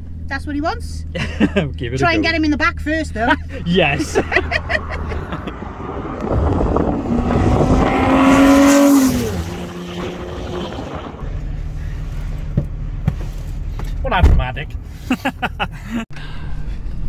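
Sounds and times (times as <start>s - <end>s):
car passing: 3.5s - 13.5s.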